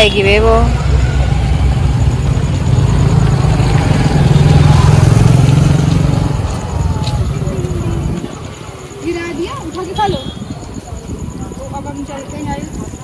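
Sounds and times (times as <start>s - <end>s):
vehicle engine passing by: 0.5s - 8.5s.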